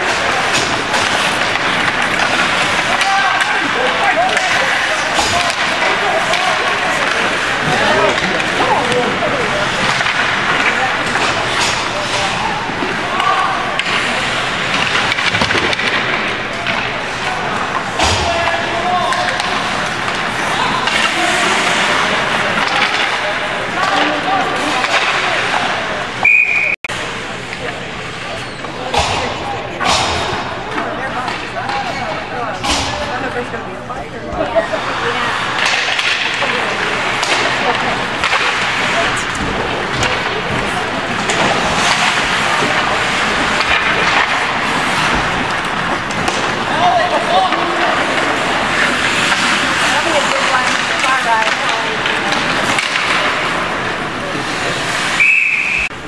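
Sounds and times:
hockey sticks and pucks clacking: 0.0s - 56.0s
spectators chattering and shouting: 0.0s - 56.0s
referee's whistle blast: 26.2s - 26.8s, 55.2s - 55.9s.

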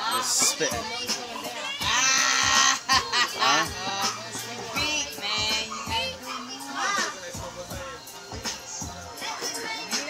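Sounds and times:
men's rising and falling calls: 1.8s - 4.2s.

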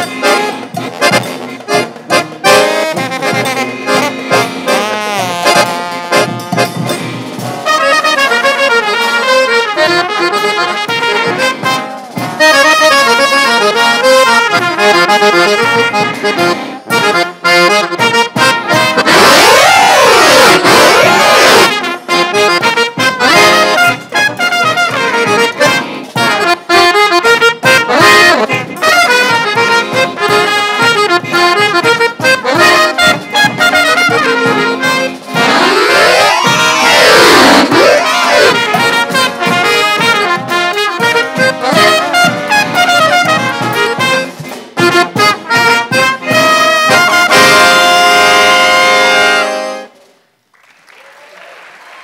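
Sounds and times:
brass band playing fast tune: 0.0s - 50.0s
horns swooping in pitch: 35.4s - 38.8s.

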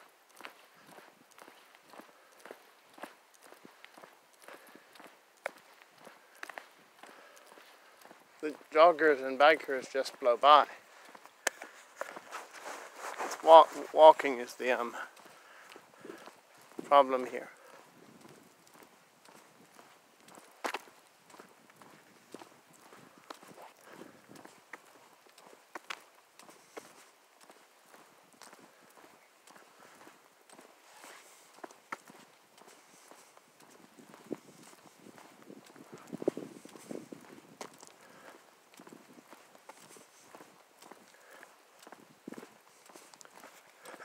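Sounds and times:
footsteps on asphalt: 0.0s - 44.0s.

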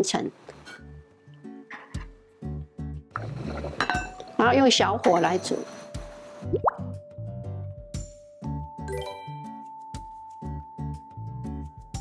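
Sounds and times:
background music: 0.0s - 12.0s
glass lid clinking on pot: 3.7s - 4.4s.

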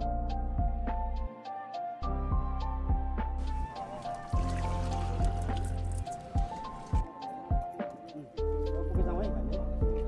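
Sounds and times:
deep bass: 8.6s - 10.0s.

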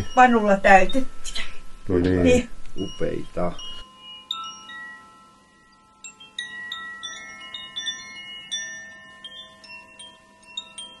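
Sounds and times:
wind chimes ringing: 0.0s - 11.0s.

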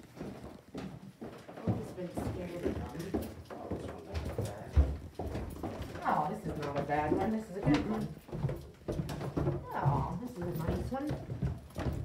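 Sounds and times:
footsteps on hardwood floor: 0.0s - 12.0s.

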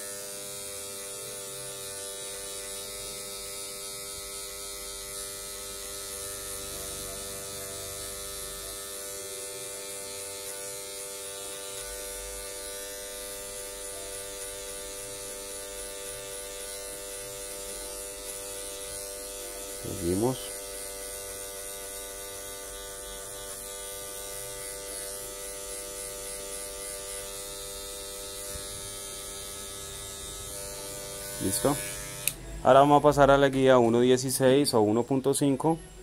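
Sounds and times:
electric hair clipper buzzing: 0.0s - 33.0s.

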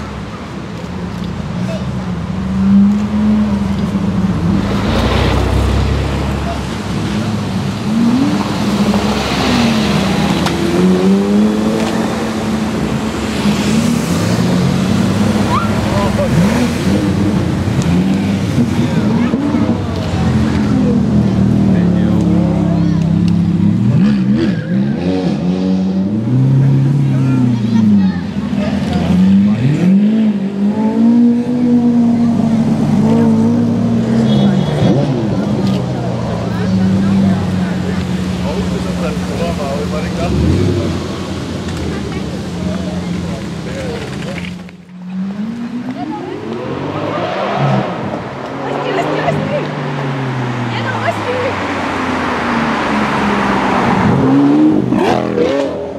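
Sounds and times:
sports car engines revving: 0.0s - 55.9s.

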